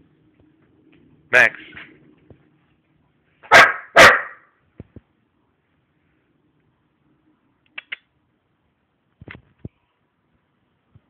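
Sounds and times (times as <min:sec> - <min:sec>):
dog barking: 0:03.4 - 0:04.5.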